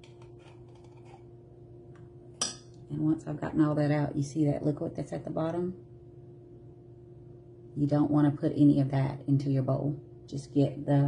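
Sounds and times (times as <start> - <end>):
metal spoon scraping a can: 0.0 - 1.3
faint steady hum: 0.0 - 11.0.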